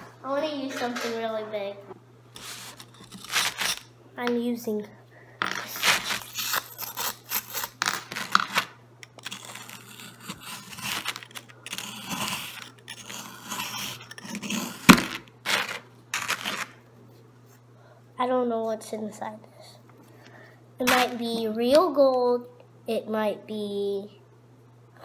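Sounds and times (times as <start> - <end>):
screwdriver scraping crumbly block: 2.4 - 3.9, 5.6 - 16.8.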